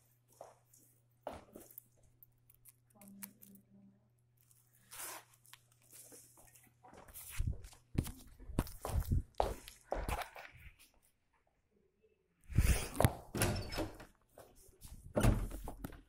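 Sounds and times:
phone rustling against fabric: 4.5 - 11.0.

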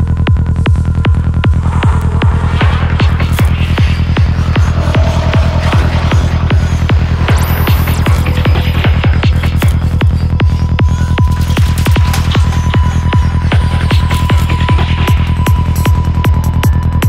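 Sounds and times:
deep bassline: 0.0 - 17.0.

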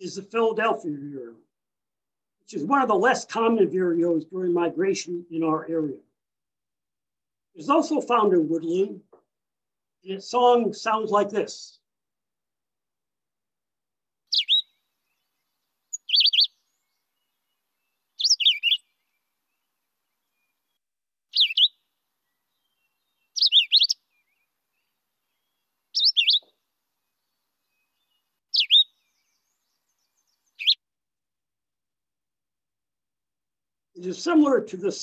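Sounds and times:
bird singing warbled phrases: 14.3 - 26.5, 27.2 - 30.8.

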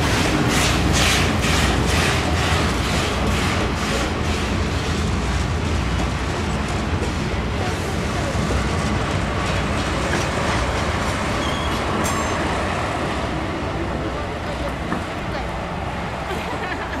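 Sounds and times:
steam train rumble and hiss: 0.0 - 17.0
voices of people: 13.1 - 17.0.

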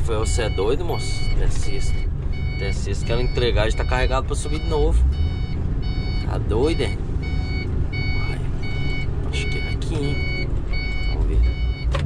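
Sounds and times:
diesel truck engine running: 0.0 - 12.0
short electronic beeps: 0.2 - 11.9.

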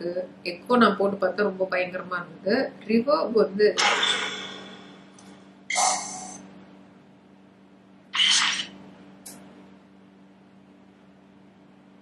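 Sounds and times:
low steady hum: 0.0 - 12.0
scratchy noise bursts with echo: 3.8 - 5.2, 8.2 - 8.8.

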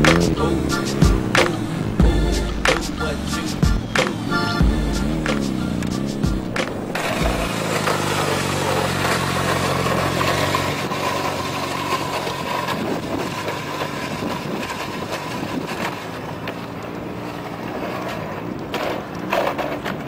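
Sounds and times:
music with sharp beat: 0.0 - 8.0
rushing noise: 0.0 - 15.8
motorcycle engine running: 0.0 - 17.6.

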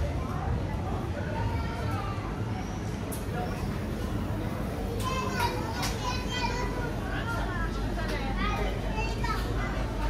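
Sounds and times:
young child talking: 4.9 - 7.4, 8.2 - 10.0.

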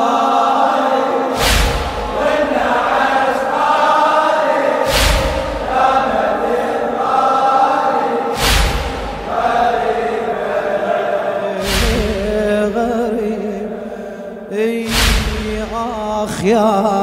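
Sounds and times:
crowd of men chanting: 0.0 - 16.4
chest slaps: 1.4 - 2.3, 4.8 - 5.9, 8.4 - 9.1, 11.6 - 12.3, 14.9 - 15.6.

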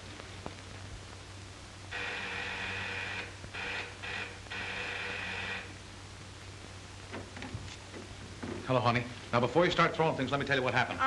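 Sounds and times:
steady low hum: 0.0 - 11.0
electric door buzzer: 1.9 - 5.7.

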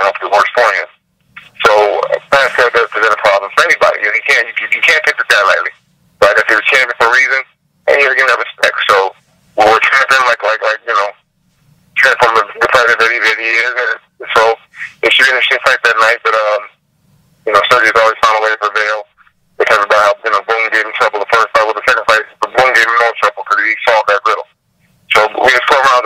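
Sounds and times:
person talking over phone line: 0.0 - 11.2, 12.0 - 16.8, 17.4 - 24.5, 25.1 - 26.0.

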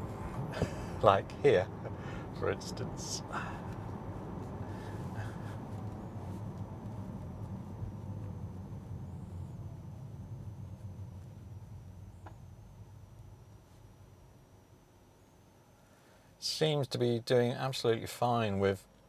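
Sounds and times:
tyre and road rumble in car: 0.0 - 13.5.

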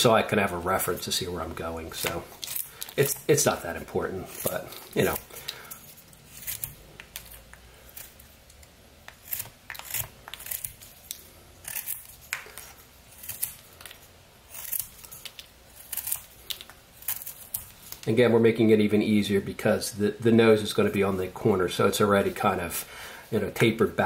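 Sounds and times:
knife shaving wood: 0.8 - 8.3, 9.0 - 18.1.

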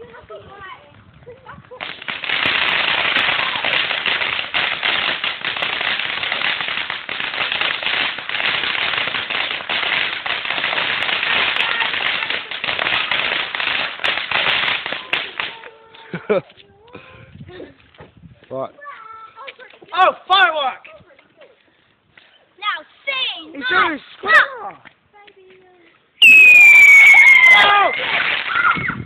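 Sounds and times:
firework fountain crackling hiss: 1.3 - 16.3, 26.2 - 29.0.

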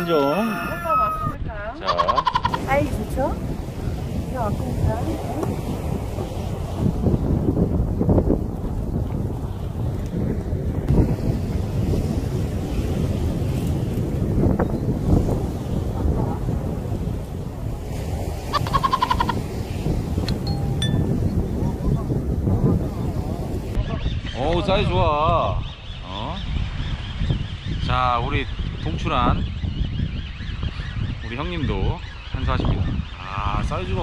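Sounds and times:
wind buffeting microphone: 0.0 - 34.0
high-pitched jingle: 20.5 - 21.2.

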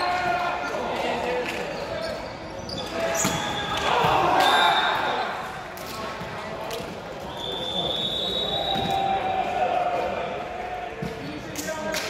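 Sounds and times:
players' voices echoing: 0.0 - 12.0.

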